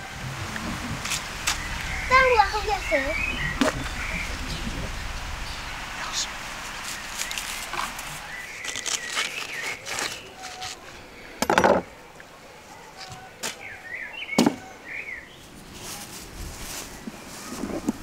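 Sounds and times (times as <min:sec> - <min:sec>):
birds chirping: 0:00.0 - 0:15.8.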